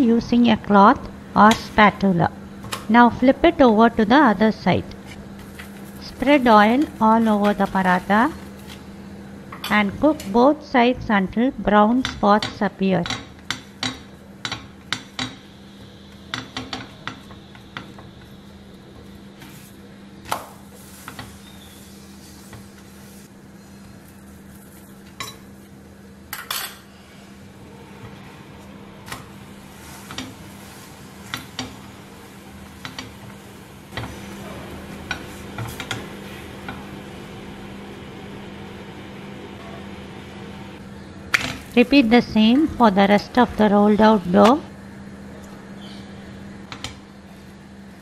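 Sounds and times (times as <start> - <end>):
steady low hum: 0.0 - 48.0
spatula scraping frying pan: 29.6 - 31.9.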